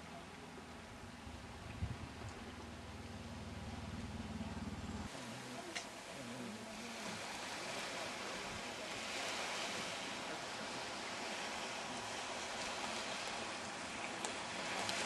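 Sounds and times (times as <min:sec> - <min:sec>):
sea waves washing onto shore: 0:05.1 - 0:15.0.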